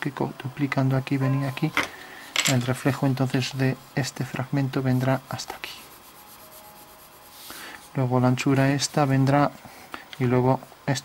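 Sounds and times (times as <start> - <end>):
pencil scratching on paper: 4.8 - 7.9.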